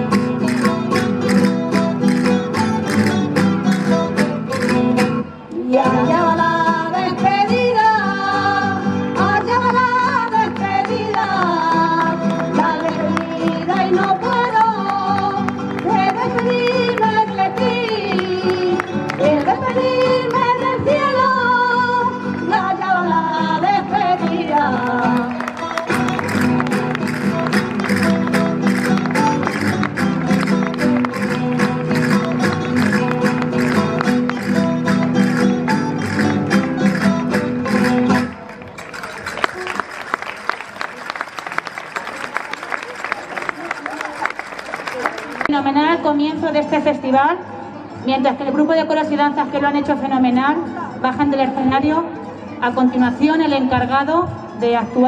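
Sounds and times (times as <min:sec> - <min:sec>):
folk song with instruments: 0:00.0 - 0:40.2
clicking percussive beat: 0:00.1 - 0:05.2
audience applauding: 0:10.5 - 0:19.5, 0:24.6 - 0:35.4, 0:37.8 - 0:45.5.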